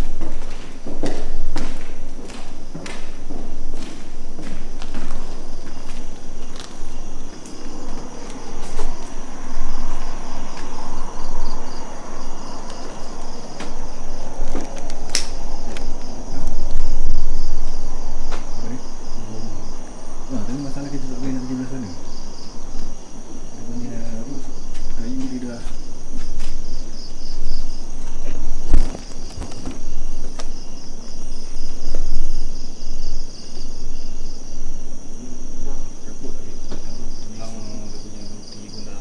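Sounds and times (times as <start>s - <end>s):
rustle of walking: 0.0s - 9.2s, 24.3s - 32.2s
footsteps: 0.0s - 11.6s, 12.4s - 17.2s, 18.2s - 18.7s, 24.4s - 32.2s
crickets trilling: 0.0s - 39.0s.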